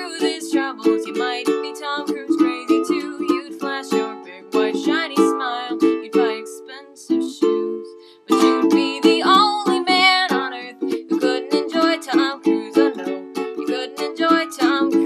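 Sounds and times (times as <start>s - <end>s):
person singing: 0.0s - 15.0s
ukulele chords strummed: 0.0s - 15.0s.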